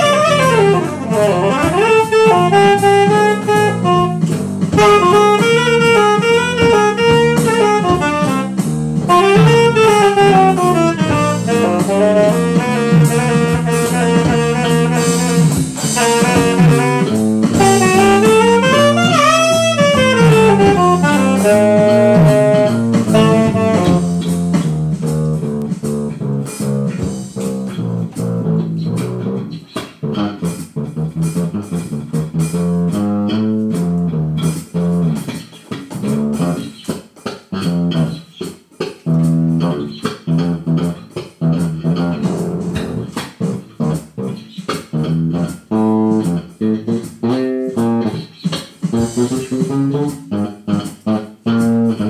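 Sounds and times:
saxophone line: 0:00.0 - 0:35.4, 0:36.0 - 0:36.9, 0:39.1 - 0:52.0
electric bass: 0:00.0 - 0:52.0.

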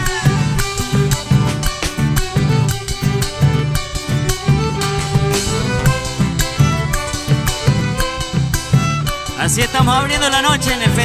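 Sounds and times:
accordion: 0:00.0 - 0:11.0
steady bass drum beat: 0:00.0 - 0:11.0
strummed acoustic guitars: 0:00.0 - 0:11.0
violin: 0:00.0 - 0:11.0.

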